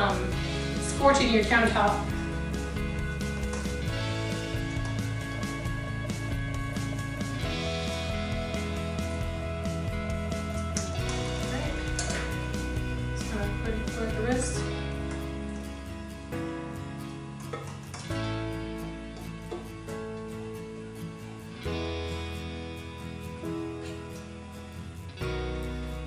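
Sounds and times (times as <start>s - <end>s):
instrumental music with bass line: 0.0s - 26.0s.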